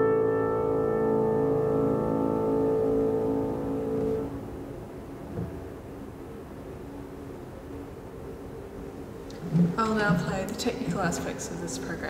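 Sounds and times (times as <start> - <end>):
grand piano chord ringing: 0.0 - 6.2.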